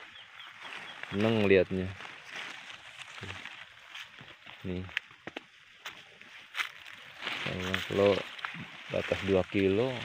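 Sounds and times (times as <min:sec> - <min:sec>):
footsteps on leaf litter: 0:00.0 - 0:10.0
rustling of leafy branches: 0:00.0 - 0:10.0.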